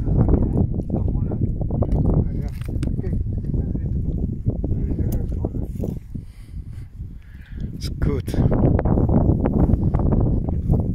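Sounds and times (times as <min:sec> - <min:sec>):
men talking quietly: 0:00.0 - 0:06.1, 0:07.7 - 0:08.6
steady low rumble: 0:00.0 - 0:10.9.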